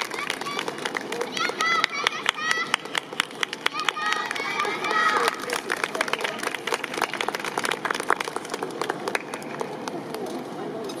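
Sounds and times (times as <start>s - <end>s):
audience clapping: 0.0s - 10.3s
crowd voices: 0.0s - 11.0s.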